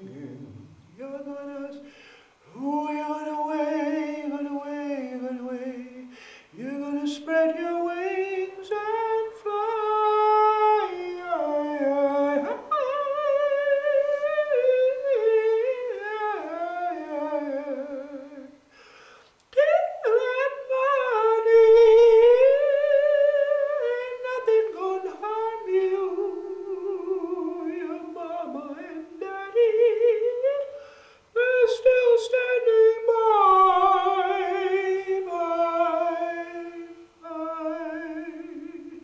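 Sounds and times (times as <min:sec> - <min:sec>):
man singing wordless melody: 0:00.0 - 0:39.0
breaths between phrases: 0:01.8 - 0:02.4, 0:06.1 - 0:06.6, 0:18.7 - 0:19.4, 0:30.8 - 0:31.3.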